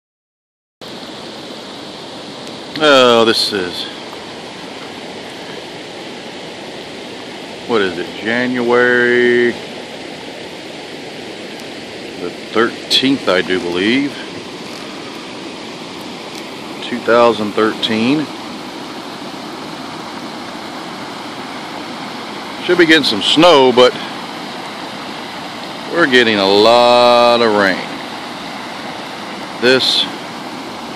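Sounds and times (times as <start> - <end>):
floodwater rushing in creek: 0.8 - 30.9
rain: 0.9 - 30.9.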